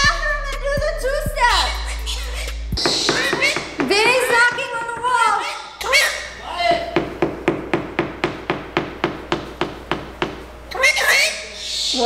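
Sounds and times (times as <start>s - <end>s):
cockatoo cries: 1.4s - 6.9s, 10.7s - 12.0s
wings knocking against boxes: 2.8s - 5.3s.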